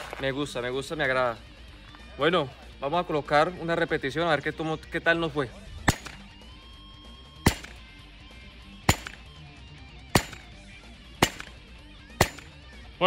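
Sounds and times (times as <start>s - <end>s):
pistol shots: 5.8s - 6.3s, 7.4s - 7.8s, 8.9s - 9.4s, 10.1s - 10.6s, 11.2s - 12.6s.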